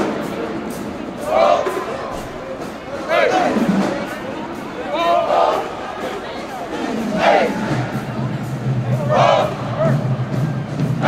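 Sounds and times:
band members shouting a chant: 0:01.1 - 0:10.4.

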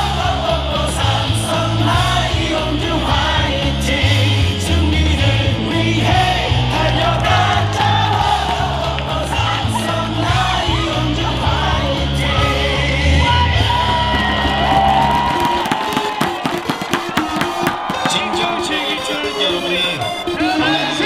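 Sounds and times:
cheer song with heavy bass beat: 0:00.0 - 0:21.0
crowd singing and shouting: 0:00.0 - 0:21.0
rapid sharp claps: 0:14.0 - 0:19.0.

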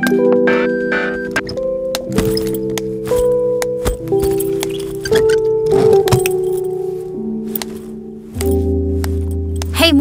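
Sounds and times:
clinking or jingling: 0:01.4 - 0:06.9.

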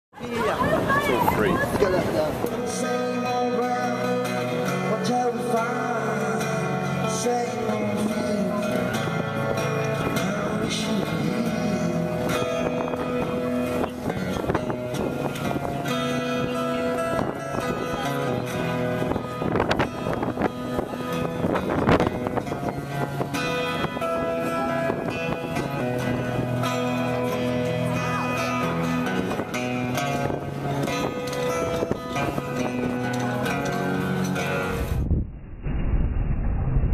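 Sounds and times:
acoustic guitar through amplifier: 0:00.2 - 0:35.4
muffled recording: 0:00.2 - 0:36.9.

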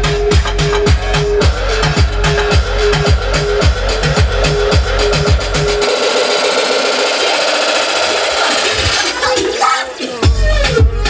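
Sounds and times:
kick drum: 0:00.0 - 0:05.8, 0:10.2 - 0:11.0
electronic dance music: 0:00.0 - 0:11.0.

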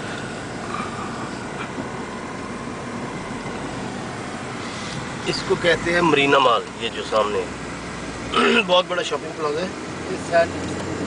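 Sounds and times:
car driving road noise: 0:00.0 - 0:11.0.

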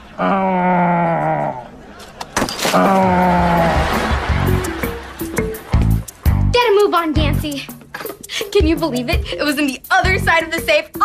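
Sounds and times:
person crying out: 0:02.8 - 0:03.8.

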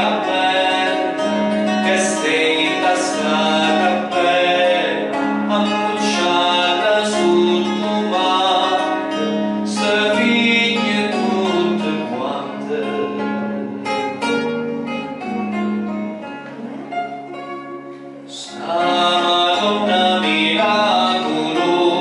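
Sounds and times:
man singing into microphone: 0:00.0 - 0:14.0, 0:18.3 - 0:22.0
plucked acoustic guitar: 0:00.0 - 0:22.0.

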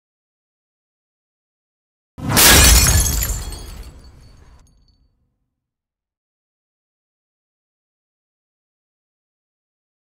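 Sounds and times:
glass breaking crash: 0:02.2 - 0:04.7.

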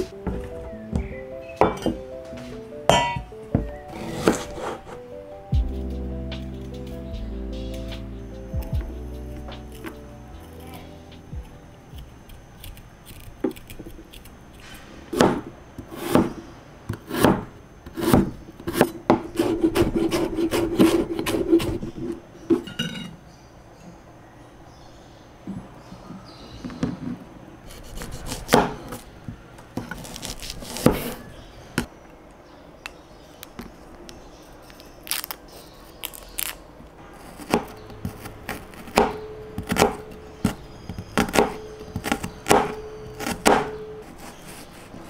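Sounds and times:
knife chopping on cutting board: 0:15.2 - 0:16.4, 0:37.3 - 0:44.4
knife slicing shallots: 0:29.9 - 0:31.3.

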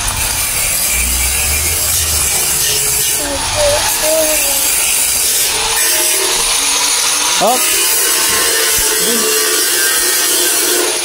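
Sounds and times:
power tool running on steel: 0:00.0 - 0:11.0.

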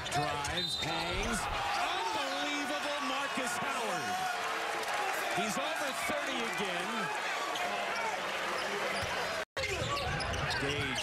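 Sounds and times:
basketball court noise: 0:00.0 - 0:11.0
crowd voices and shouts: 0:00.0 - 0:11.0.

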